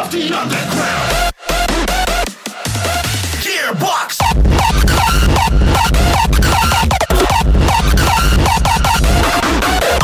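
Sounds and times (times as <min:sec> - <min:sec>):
distorted kick drum: 0:04.2 - 0:10.0
repeating synth line: 0:04.2 - 0:10.0.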